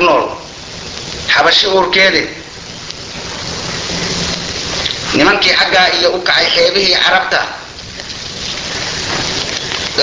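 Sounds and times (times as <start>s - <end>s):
steady rain-like rushing hiss: 0.0s - 10.0s.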